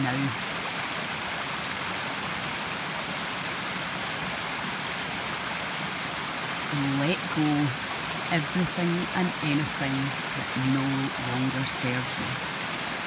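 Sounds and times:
stream rushing over rocks: 0.0 - 13.0.

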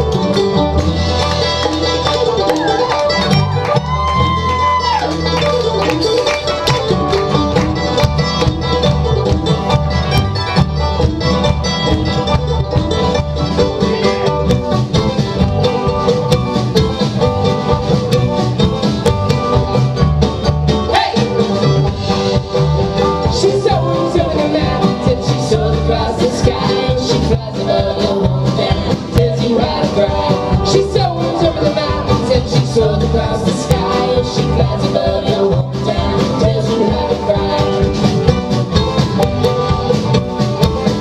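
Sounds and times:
bluegrass band playing: 0.0 - 41.0.

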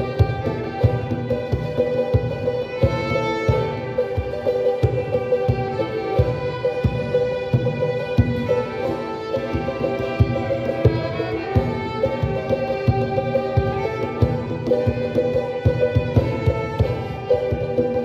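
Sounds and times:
violins playing slow melody: 0.0 - 18.0.

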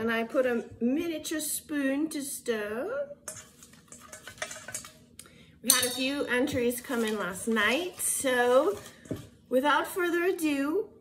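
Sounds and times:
spoon clinking in metal bowl: 5.7 - 6.6.

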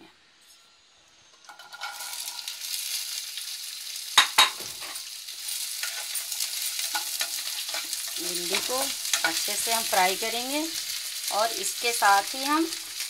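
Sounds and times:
okra sizzling in hot oil: 0.8 - 13.0.

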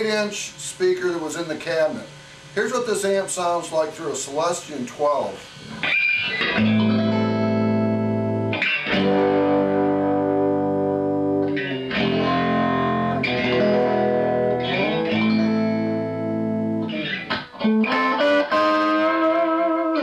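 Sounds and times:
electric guitar chords ringing: 5.6 - 20.0.

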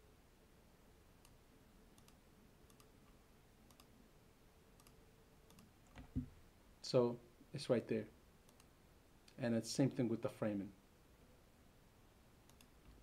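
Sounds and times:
computer mouse clicks: 2.0 - 3.9, 4.8 - 6.3, 8.5 - 8.7, 12.4 - 13.0.

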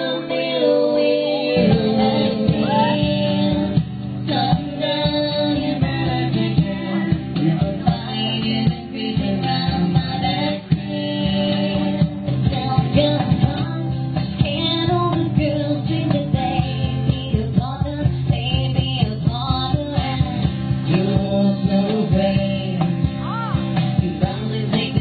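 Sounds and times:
acoustic guitar strumming: 0.0 - 25.0
person singing: 0.0 - 25.0.

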